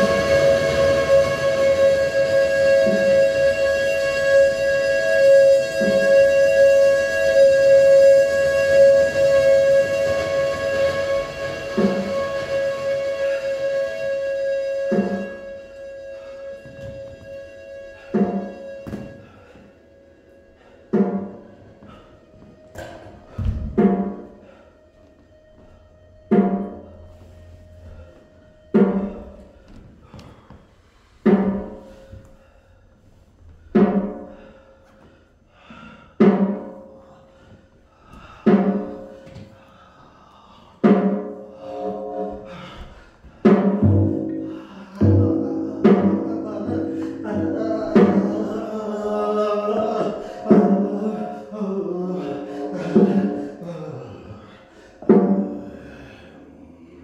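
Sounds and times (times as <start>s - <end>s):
pitched percussive hits: 0.0s - 19.6s, 43.3s - 51.2s
sustained pitched drone: 0.0s - 31.0s, 41.4s - 57.0s.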